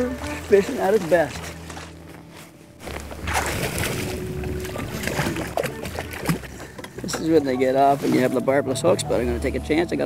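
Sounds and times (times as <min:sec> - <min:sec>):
fish thrashing and splashing water: 0:02.8 - 0:07.1.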